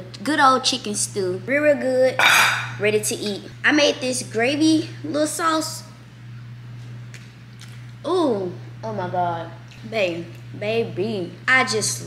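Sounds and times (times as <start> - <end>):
dishwasher humming: 0.0 - 5.9.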